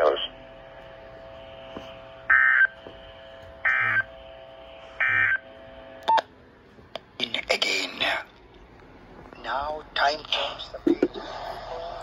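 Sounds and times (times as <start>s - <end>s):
faint steady hum: 0.0s - 12.0s
digital data bursts from radio: 3.6s - 4.2s, 5.0s - 5.4s.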